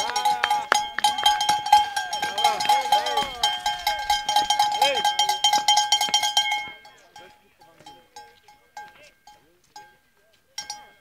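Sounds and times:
people shouting encouragement: 0:00.0 - 0:05.1
cowbells shaken rapidly: 0:00.0 - 0:10.0, 0:10.6 - 0:11.0.

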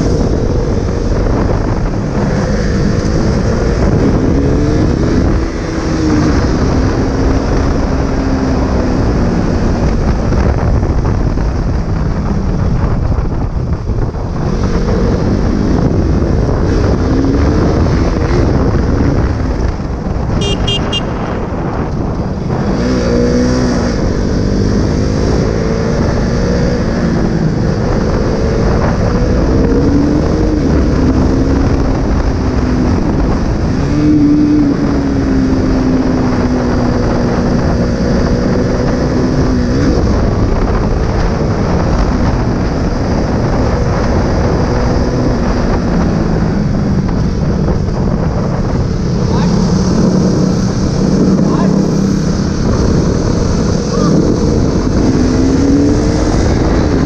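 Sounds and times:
motorcycle engine revving: 0:00.0 - 0:57.0
wind noise on microphone: 0:00.0 - 0:57.0.

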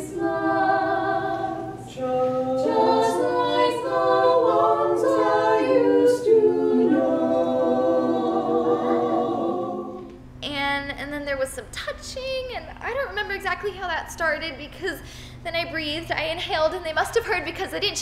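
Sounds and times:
quartet singing a cappella: 0:00.0 - 0:10.2
woman speaking: 0:10.4 - 0:18.0
singers breathing: 0:15.0 - 0:15.4.

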